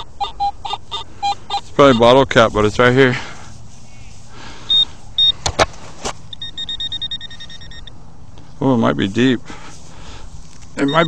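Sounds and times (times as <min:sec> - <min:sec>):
pinpointer beeping: 0:00.0 - 0:02.2, 0:04.7 - 0:05.4, 0:06.3 - 0:08.0, 0:10.8 - 0:11.0.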